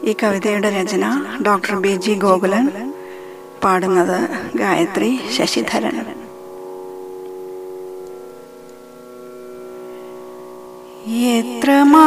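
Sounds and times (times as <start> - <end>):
held keyboard chord: 0.0 - 12.0.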